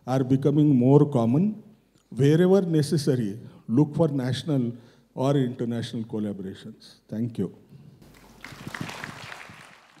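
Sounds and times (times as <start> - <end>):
audience applauding: 8.0 - 10.0.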